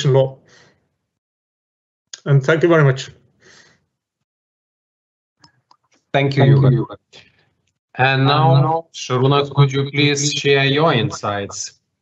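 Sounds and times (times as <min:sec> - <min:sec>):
soft breath: 0:03.4 - 0:03.8
person speaking: 0:06.2 - 0:07.2, 0:08.0 - 0:11.7.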